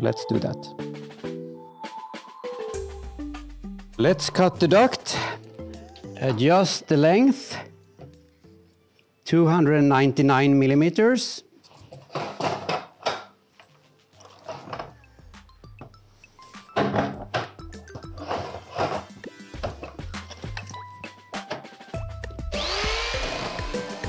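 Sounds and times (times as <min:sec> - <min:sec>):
background music: 0:00.0 - 0:24.0
power shear whining: 0:22.5 - 0:24.0.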